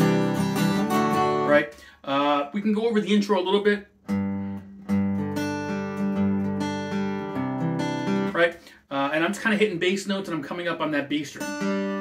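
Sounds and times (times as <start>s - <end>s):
acoustic guitar arpeggio: 0.0s - 12.0s.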